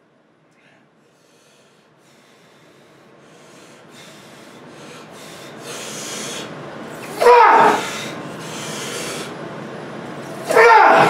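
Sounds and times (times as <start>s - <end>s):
man breathing hard: 0.6s - 9.4s
man grunting: 7.1s - 7.9s, 10.5s - 11.0s.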